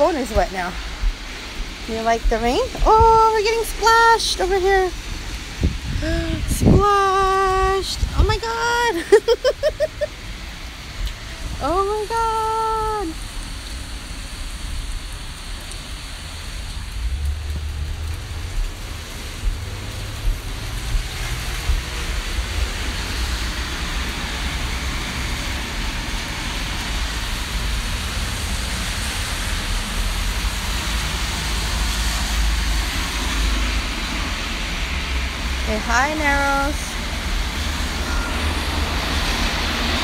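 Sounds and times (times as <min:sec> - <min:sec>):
heavy rain pouring: 0:00.0 - 0:40.0
low rumble: 0:13.2 - 0:24.9.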